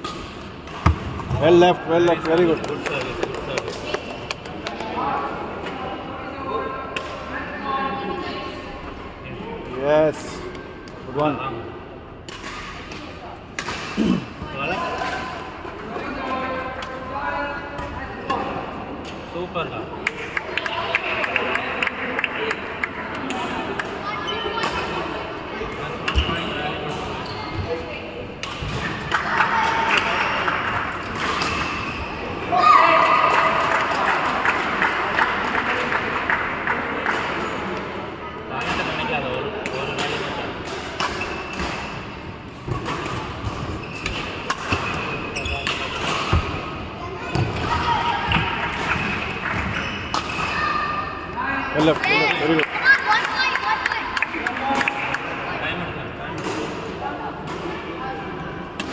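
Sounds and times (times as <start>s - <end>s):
voices of players and spectators: 0.0s - 58.9s.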